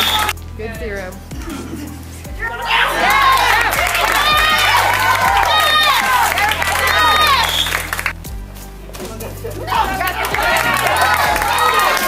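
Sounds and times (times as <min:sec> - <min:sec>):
women cheering and whooping: 0:02.4 - 0:08.0, 0:09.5 - 0:12.0.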